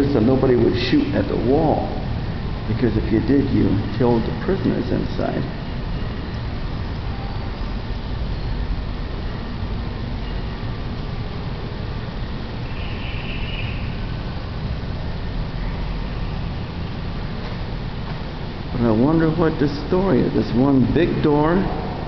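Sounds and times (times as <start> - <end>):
low background rumble: 0.0 - 22.0.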